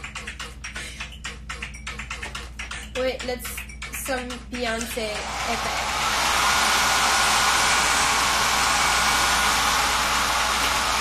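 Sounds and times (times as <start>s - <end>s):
hair dryer blowing: 5.0s - 11.0s.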